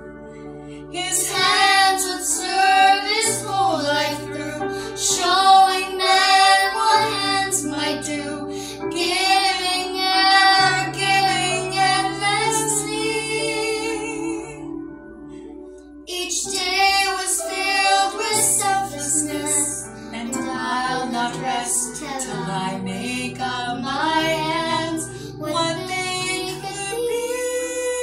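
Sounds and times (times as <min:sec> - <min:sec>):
sustained low backing notes: 0:00.0 - 0:27.5
girl singing with vibrato: 0:00.9 - 0:14.6, 0:16.1 - 0:28.0.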